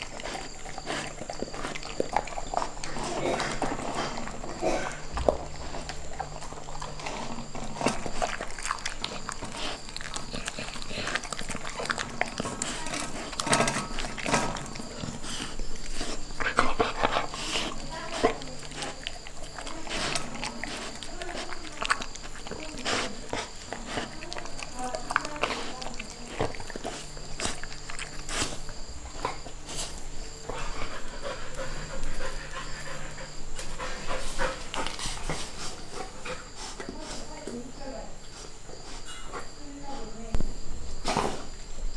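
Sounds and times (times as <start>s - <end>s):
puppy licking and chewing: 0.0s - 37.6s.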